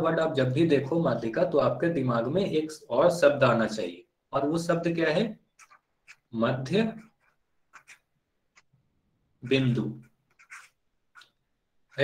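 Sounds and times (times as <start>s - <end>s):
stylus scratching on tablet: 5.5s - 8.7s, 9.4s - 12.0s.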